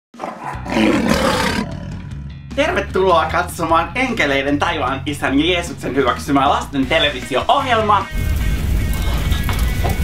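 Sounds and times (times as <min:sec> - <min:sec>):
roar sound effect: 0:00.2 - 0:02.2
low music bed: 0:01.9 - 0:10.0.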